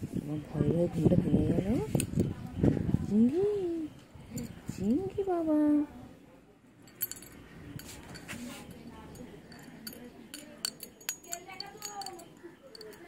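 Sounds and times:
metal keychain jingling: 0:06.9 - 0:13.0.

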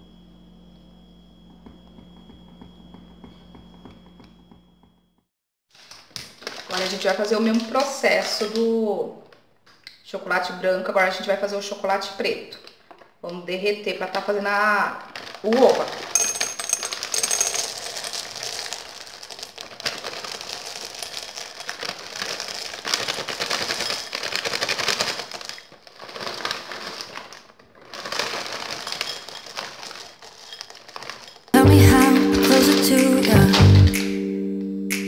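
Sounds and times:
chocolate drops rattling into glass bowl: 0:15.3 - 0:25.7, 0:28.1 - 0:31.5
background music: 0:31.6 - 0:35.0.

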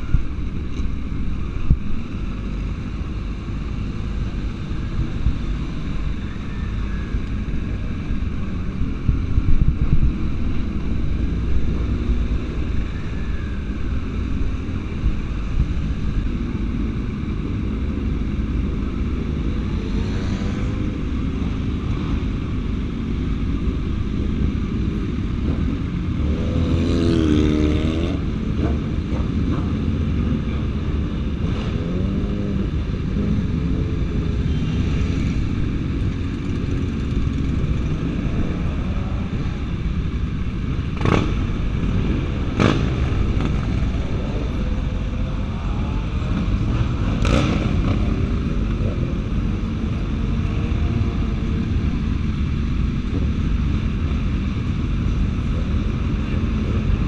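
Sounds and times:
motorcycles running at low speed: 0:00.0 - 0:57.0
motorcycle engine revving: 0:24.6 - 0:40.0, 0:40.7 - 0:53.5.

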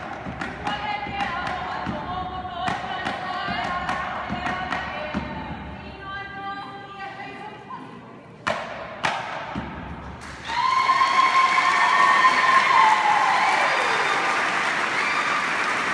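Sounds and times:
audience applause and cheering: 0:10.2 - 0:15.9.

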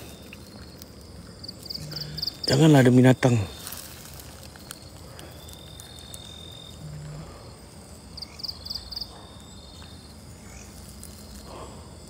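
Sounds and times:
insect trill: 0:00.0 - 0:12.0.

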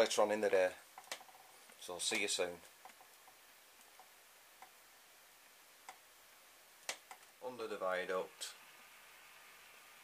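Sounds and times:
faint clicks: 0:06.8 - 0:07.3.

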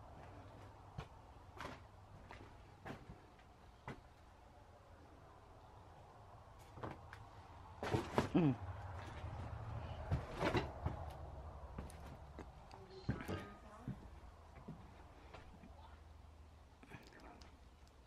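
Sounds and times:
knocks and bumps: 0:07.8 - 0:15.6.

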